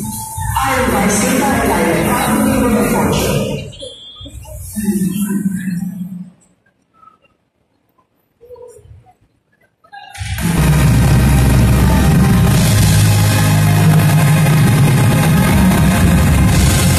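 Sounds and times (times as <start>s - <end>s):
live band playing loudly: 10.4s - 16.9s.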